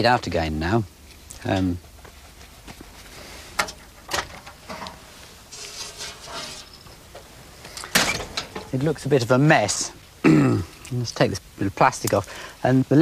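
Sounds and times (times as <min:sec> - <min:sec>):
short rustle: 0:01.1 - 0:08.9
light handling clicks and knocks: 0:03.6 - 0:05.0.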